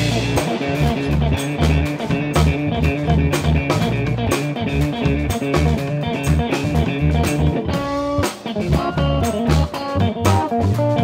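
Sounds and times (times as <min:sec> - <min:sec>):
drum kit: 0:00.0 - 0:11.0
electric bass: 0:00.0 - 0:11.0
electric guitar: 0:00.0 - 0:11.0.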